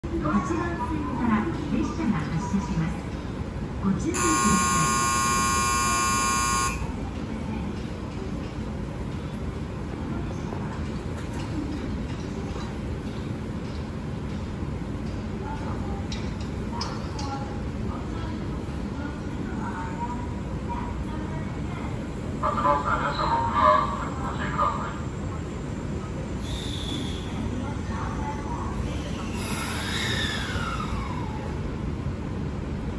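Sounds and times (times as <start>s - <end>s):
electric train rumbling: 0.0s - 32.9s
station announcement voice: 3.8s - 7.0s, 22.4s - 25.6s
platform background noise: 3.8s - 8.1s
electronic departure buzzer tone: 4.2s - 6.9s.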